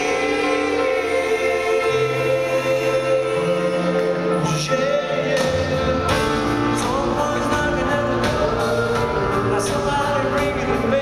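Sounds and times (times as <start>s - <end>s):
choir-like vocal harmonies: 0.0s - 11.0s
live rock band playing: 0.0s - 11.0s.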